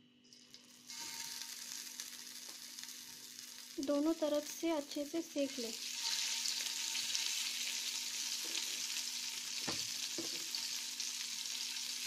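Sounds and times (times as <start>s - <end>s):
chicken sizzling in hot oil: 0.4s - 12.0s.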